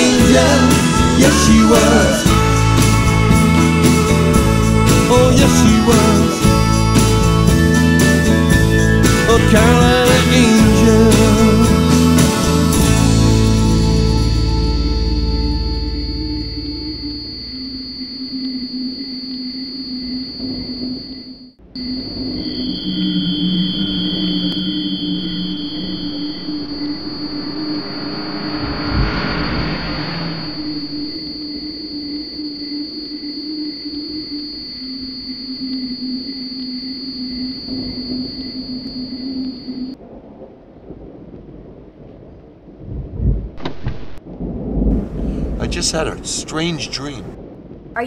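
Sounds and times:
eerie droning tones: 0:13.3 - 0:40.0
faint regular pulse: 0:15.8 - 0:40.0
rushing noise: 0:22.2 - 0:32.5.

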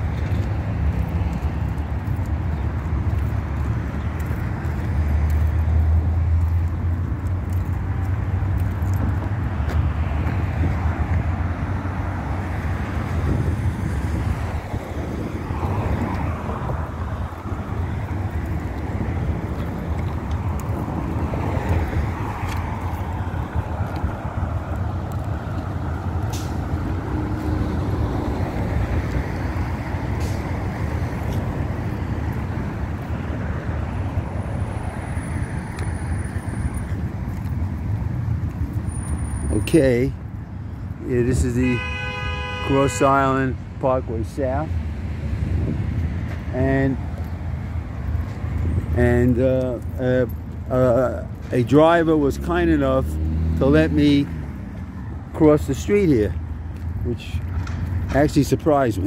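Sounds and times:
passing cars rumbling: 0:00.0 - 0:59.0.

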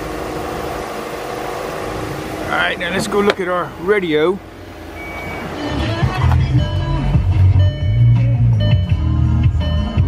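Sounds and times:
car radio music with heavy bass: 0:00.0 - 0:10.0.

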